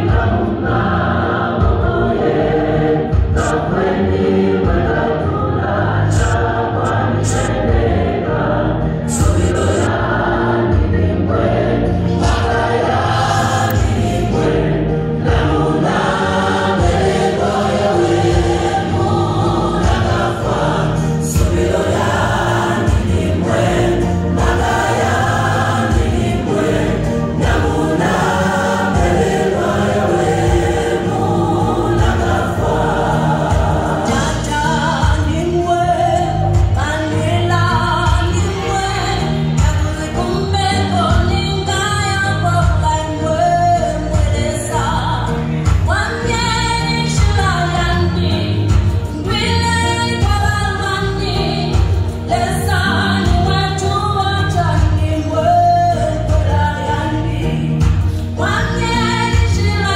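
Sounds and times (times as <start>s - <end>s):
pulsing beat and bass: 0.0s - 40.3s
gospel choir singing: 0.0s - 59.9s.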